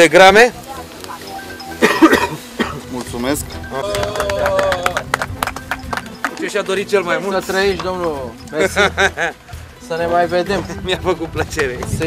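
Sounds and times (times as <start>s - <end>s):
faint background music: 0.0s - 12.0s
short cough: 1.8s - 2.8s.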